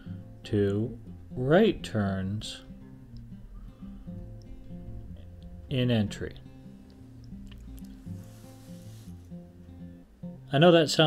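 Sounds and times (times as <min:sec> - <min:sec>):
quiet acoustic guitar music: 0:00.0 - 0:11.0.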